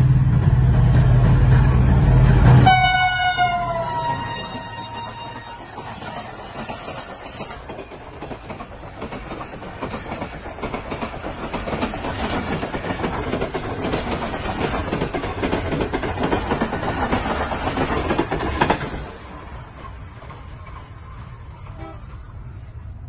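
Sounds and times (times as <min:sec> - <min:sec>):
train wheels clattering over joints: 0:04.2 - 0:22.5.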